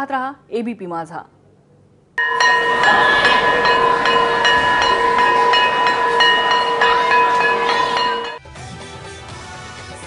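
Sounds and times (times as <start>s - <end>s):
steady ringing tones: 2.2s - 8.4s.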